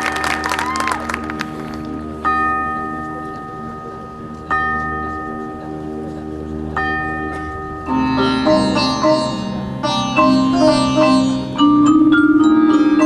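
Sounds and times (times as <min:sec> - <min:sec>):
crowd applause: 0:00.0 - 0:02.1.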